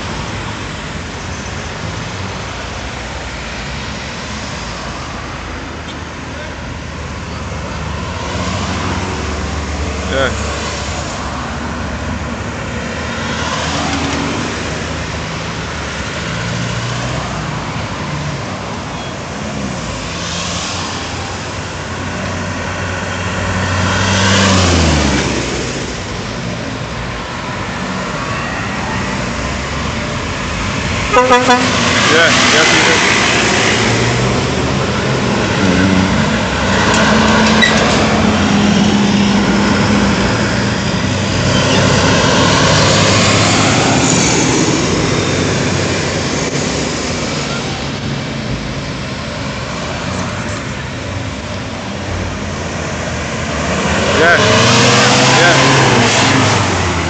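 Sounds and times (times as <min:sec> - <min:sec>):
road traffic passing: 0:00.0 - 0:57.0.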